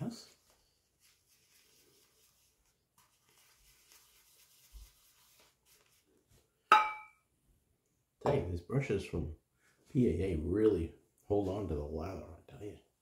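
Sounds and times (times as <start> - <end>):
shaving brush rubbing soap: 1.0 - 6.1.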